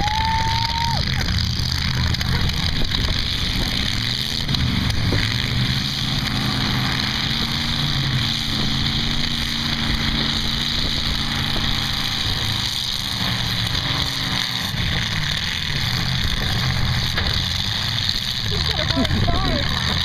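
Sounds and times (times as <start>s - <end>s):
car engines droning: 0.0s - 20.0s.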